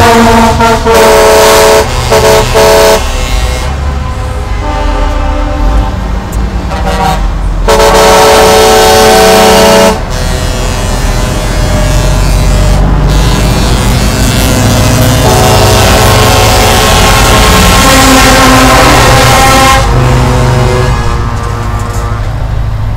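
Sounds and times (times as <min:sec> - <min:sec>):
truck air horns chord: 0:00.0 - 0:22.4
diesel truck engines running: 0:00.0 - 0:22.9.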